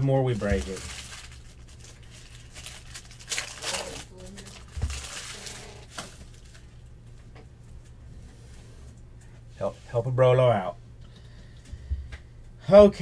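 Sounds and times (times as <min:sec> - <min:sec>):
foil wrapper crinkling and tearing: 0:00.0 - 0:06.8.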